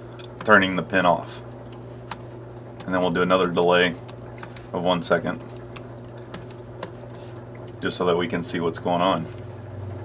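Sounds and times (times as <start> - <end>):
computer keyboard keystrokes: 2.1 - 7.0.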